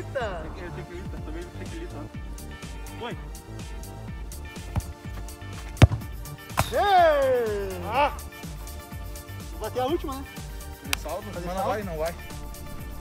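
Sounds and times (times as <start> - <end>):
background music with steady beat: 0.0 - 13.0
football being kicked: 4.6 - 6.8.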